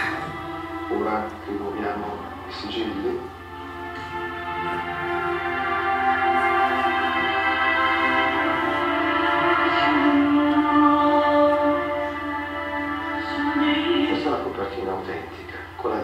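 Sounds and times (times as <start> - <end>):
ambient music sustained chords: 0.0 - 16.0.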